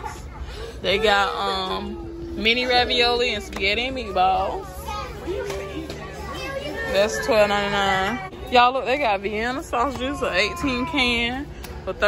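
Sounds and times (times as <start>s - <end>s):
children talking softly: 0.0s - 8.7s
steady low hum: 0.0s - 12.0s.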